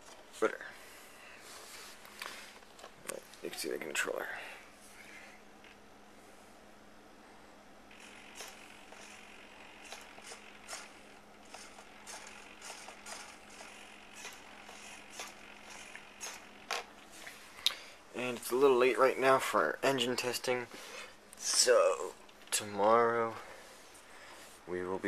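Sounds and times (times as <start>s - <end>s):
faint steady hum: 0.0s - 25.0s
servos whirring in quick bursts: 7.9s - 16.9s.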